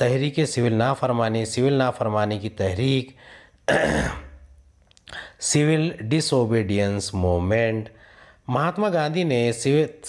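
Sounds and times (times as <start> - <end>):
man clearing throat: 3.7 - 4.4.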